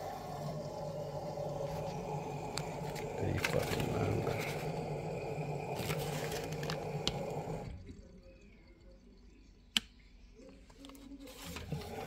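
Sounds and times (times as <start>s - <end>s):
washer-dryer humming and rumbling: 0.0s - 12.0s.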